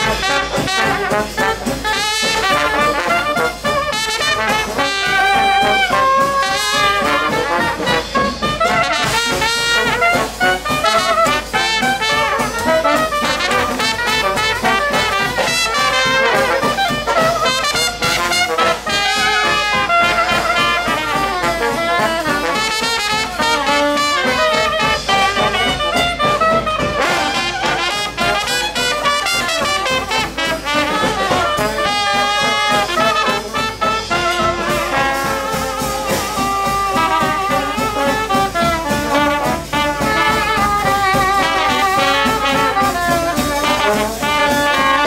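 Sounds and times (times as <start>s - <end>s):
string bass and drums: 0.0s - 45.0s
trombone: 0.0s - 45.0s
soprano saxophone: 33.7s - 45.0s.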